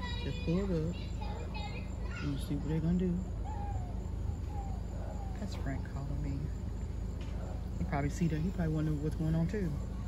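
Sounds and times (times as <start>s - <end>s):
faint distant falling calls: 0.0s - 10.0s
low outdoor rumble: 0.0s - 10.0s.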